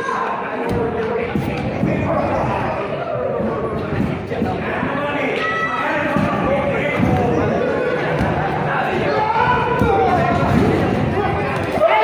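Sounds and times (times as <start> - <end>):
voices shouting: 5.1 - 12.0.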